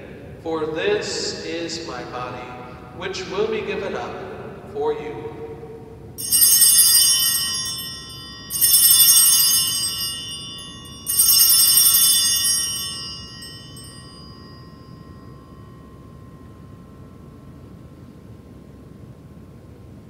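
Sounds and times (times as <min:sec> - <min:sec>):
altar bells jingling: 0:06.2 - 0:17.8.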